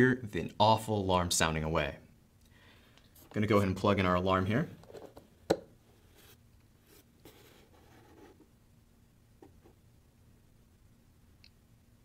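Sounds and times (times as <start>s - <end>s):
hands handling cable on table: 4.7s - 5.7s.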